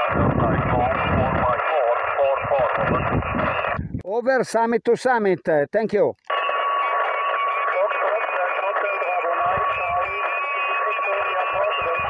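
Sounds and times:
narrow-band radio voices: 0:00.0 - 0:03.8, 0:04.4 - 0:12.0
radio hiss: 0:00.0 - 0:03.8, 0:06.2 - 0:12.0.

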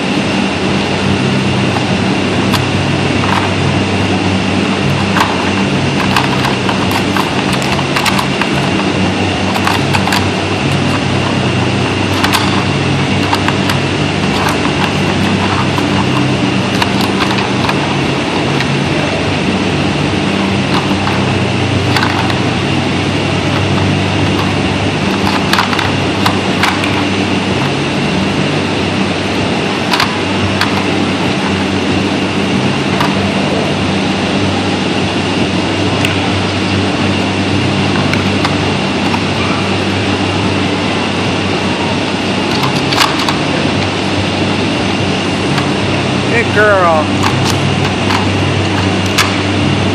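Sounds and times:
steady low hum: 0:00.0 - 0:49.9
plastic clicks and clacks: 0:06.0 - 0:08.8, 0:09.5 - 0:11.0, 0:12.1 - 0:16.2, 0:21.9 - 0:22.4, 0:25.1 - 0:27.1, 0:29.9 - 0:30.9
plastic puzzle pieces clacking: 0:06.0 - 0:08.8.

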